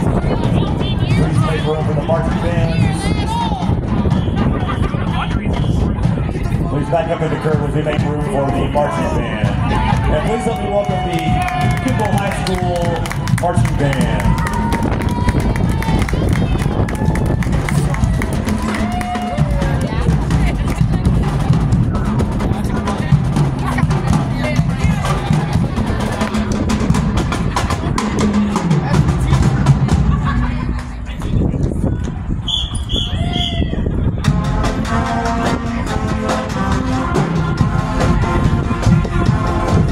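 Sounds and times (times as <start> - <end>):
steady drumming: 0.0 - 32.4, 34.1 - 39.9
horns holding low notes: 32.3 - 39.9.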